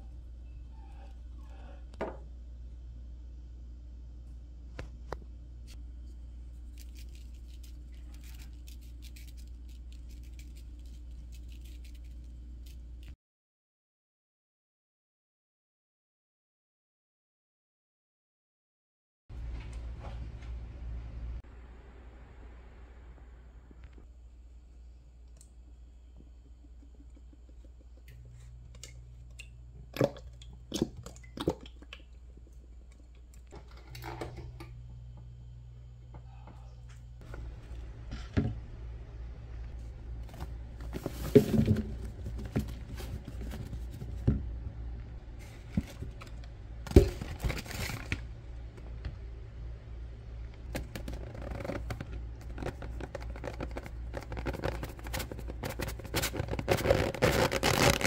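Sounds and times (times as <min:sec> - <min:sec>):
low hum: 0:19.3 - 0:52.8.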